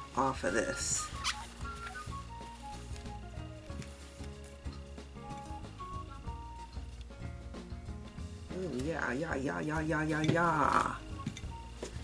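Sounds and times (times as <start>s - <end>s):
background music with bass line: 0.0s - 12.0s
paper towel squeaking on resin: 0.4s - 4.2s.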